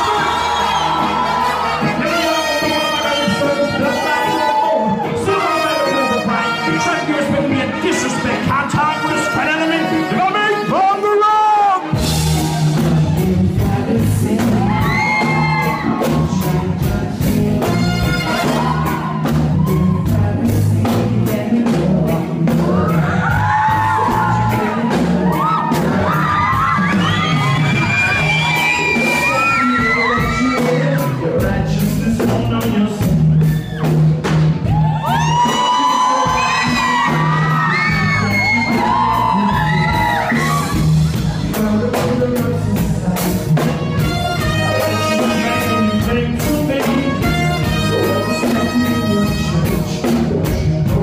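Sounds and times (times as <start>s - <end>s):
trumpet and trombone horns: 0.0s - 12.5s, 17.5s - 19.2s, 43.5s - 51.0s
crowd cheering and singing along: 0.0s - 51.0s
reggae band playing: 0.0s - 51.0s.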